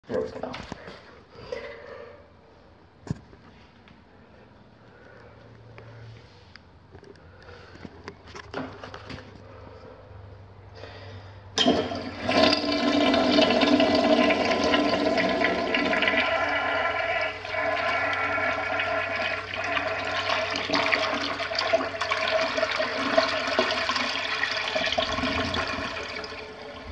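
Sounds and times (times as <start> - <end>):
toilet flushing: 11.6 - 26.9.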